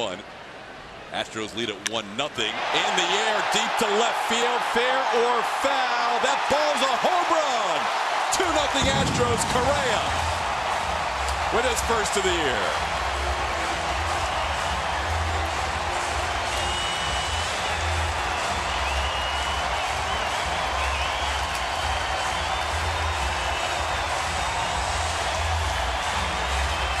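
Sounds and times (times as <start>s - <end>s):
crowd cheering: 2.3s - 27.0s
music playing: 2.8s - 27.0s.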